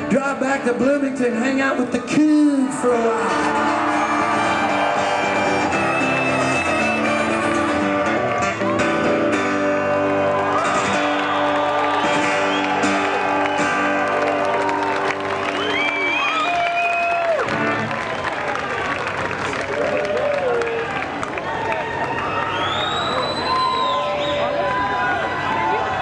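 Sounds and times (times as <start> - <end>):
lead guitar: 0.0 - 21.3
live rock band playing: 2.9 - 16.2.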